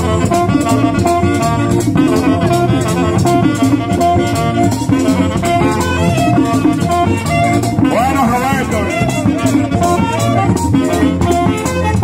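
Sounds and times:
accordion: 0:00.0 - 0:12.0
drum beat: 0:00.0 - 0:12.0
rattling percussion: 0:00.0 - 0:12.0
saxophone melody: 0:00.0 - 0:12.0.

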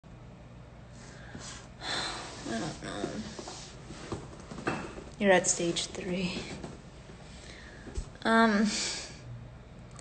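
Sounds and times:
sharp intake of breath: 0:00.9 - 0:02.5
woman breathing: 0:00.9 - 0:03.8, 0:07.2 - 0:09.3
woman speaking: 0:02.4 - 0:03.5, 0:05.2 - 0:06.6, 0:08.2 - 0:09.1.

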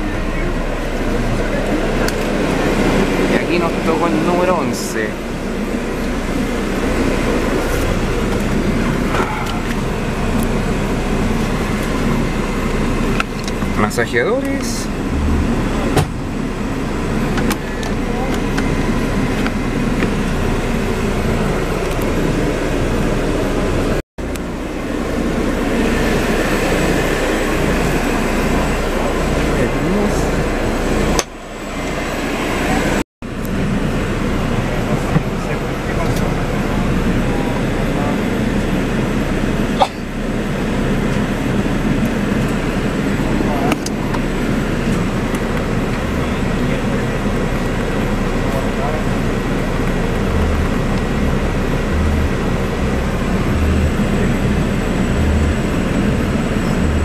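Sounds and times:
bus engine: 0:00.0 - 0:57.0
ventilation running: 0:00.0 - 0:57.0
indistinct voices: 0:06.9 - 0:09.9, 0:45.0 - 0:57.0.

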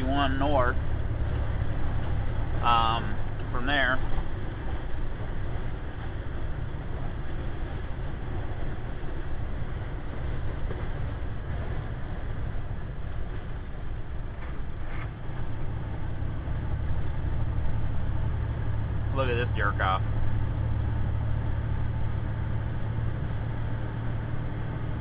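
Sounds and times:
diesel engine drone: 0:00.0 - 0:25.0
road noise: 0:00.0 - 0:25.0.

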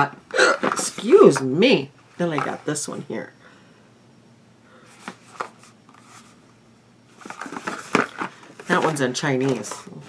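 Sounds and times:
person speaking: 0:00.0 - 0:03.4, 0:08.5 - 0:10.0
cardboard rustling: 0:00.6 - 0:01.5, 0:04.9 - 0:06.4, 0:07.1 - 0:10.0.

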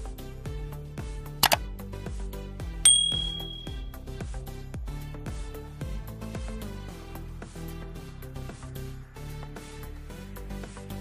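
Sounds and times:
background music with beat: 0:00.0 - 0:11.0
quick double click: 0:01.4 - 0:01.6
bright bell ding: 0:02.9 - 0:03.9.

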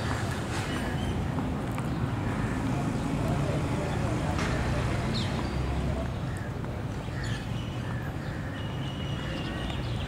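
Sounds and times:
faint voices: 0:02.1 - 0:09.8.

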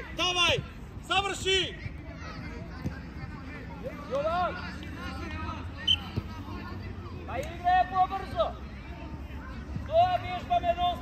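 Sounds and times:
faint voices calling: 0:00.0 - 0:11.0.

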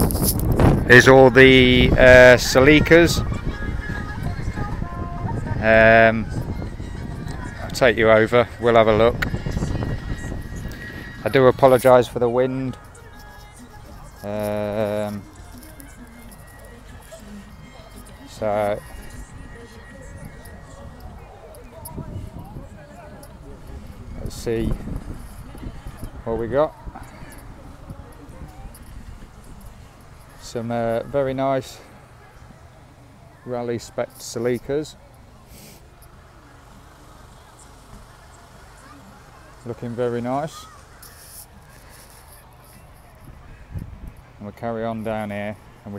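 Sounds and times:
wind rumble on microphone: 0:00.0 - 0:12.2, 0:12.8 - 0:31.2, 0:42.5 - 0:44.5
people's voices: 0:00.0 - 0:45.9
distant music: 0:01.0 - 0:44.4.

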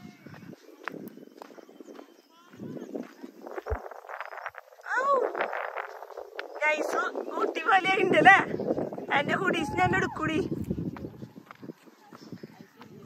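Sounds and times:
people talking in background: 0:08.5 - 0:13.0.

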